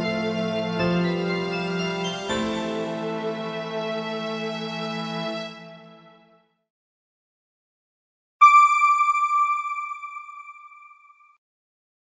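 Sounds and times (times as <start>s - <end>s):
high chime note: 8.4s - 11.4s.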